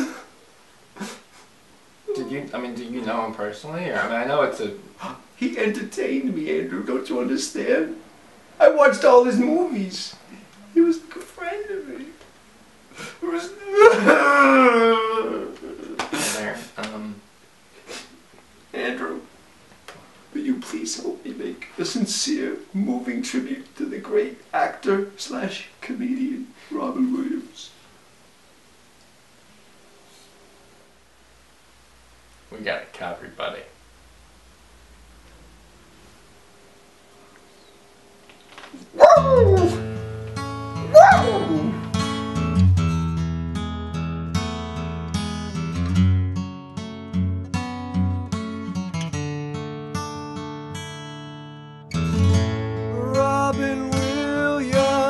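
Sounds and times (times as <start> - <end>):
man sobbing: 0.0 - 0.4, 1.0 - 1.4, 13.1 - 16.5, 40.9 - 41.8, 53.0 - 55.0
man crying wail: 13.5 - 16.0, 40.9 - 41.8
acoustic guitar chord ringing: 39.0 - 55.0
loud cry sliding down in pitch: 41.0 - 41.8.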